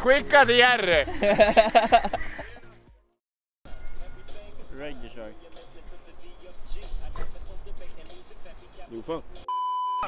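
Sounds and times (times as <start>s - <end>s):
censor bleep tone: 9.5s - 10.0s.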